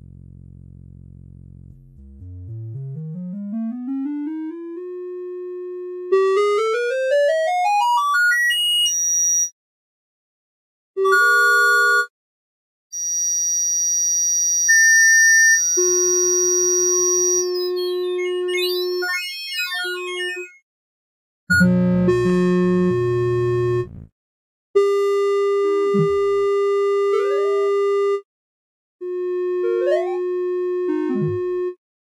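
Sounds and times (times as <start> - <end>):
synthesized chord: 0.0 - 6.2.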